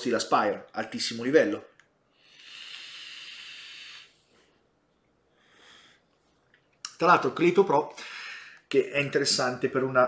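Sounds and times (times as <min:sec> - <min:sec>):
airy hiss of vape draw: 0:02.2 - 0:04.2.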